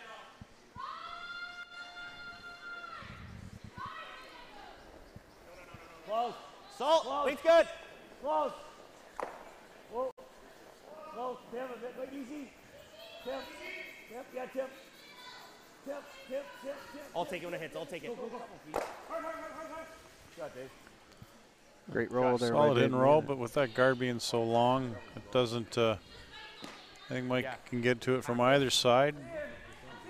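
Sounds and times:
people shouting sweeping calls: 0.0s - 8.9s, 9.9s - 20.8s.

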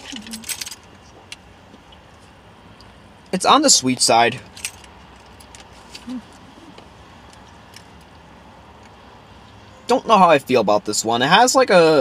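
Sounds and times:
car cabin low rumble: 5.8s - 8.4s
closed-mouth hum: 5.8s - 9.9s.

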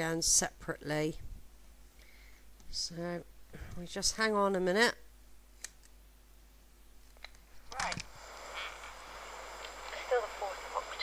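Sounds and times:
cassette tape hiss: 7.0s - 11.0s.

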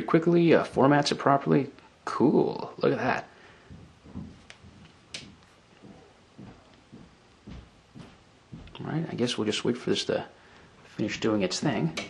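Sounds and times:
soft low thumps: 3.6s - 8.9s.

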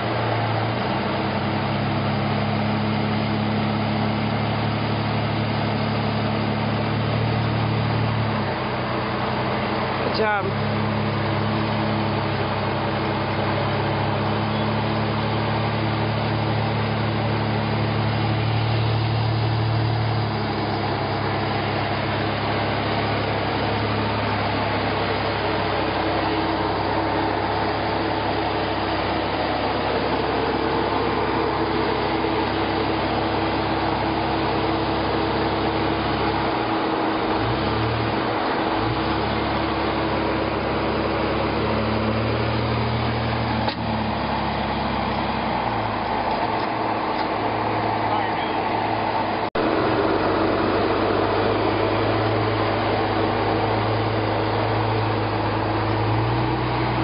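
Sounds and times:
engine humming at crawling speed: 0.0s - 57.0s.

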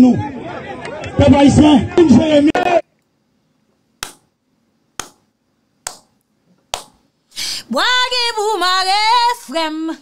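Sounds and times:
slow hand claps: 4.0s - 4.2s, 5.0s - 5.2s, 5.8s - 6.1s, 6.7s - 7.0s.

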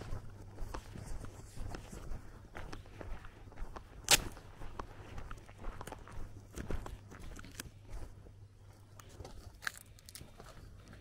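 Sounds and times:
footsteps of person walking: 0.0s - 11.0s.

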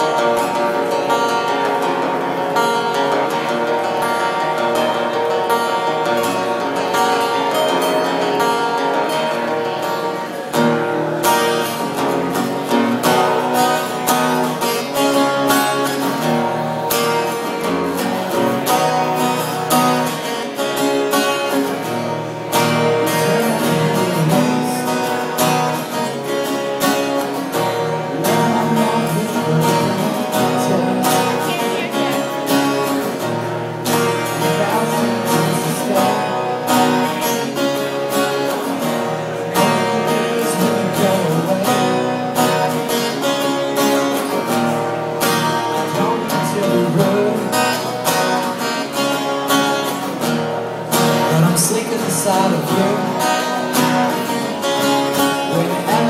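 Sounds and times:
acoustic guitars strumming chords: 0.0s - 56.0s.

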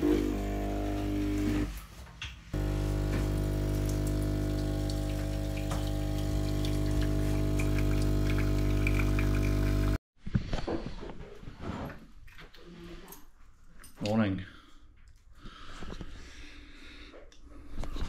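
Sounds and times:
espresso machine pump humming: 0.0s - 1.8s, 2.6s - 10.0s.

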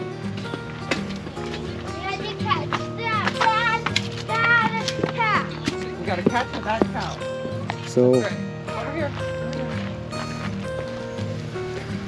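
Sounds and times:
background music with sustained notes: 0.0s - 12.0s
child's high-pitched voice: 2.0s - 5.5s.

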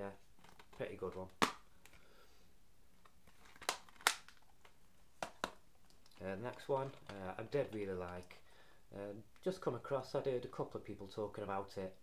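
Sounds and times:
plastic case clicks: 3.4s - 4.4s.

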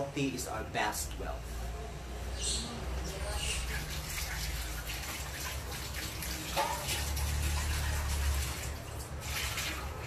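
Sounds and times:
tap water splashing in sink: 3.7s - 10.0s.

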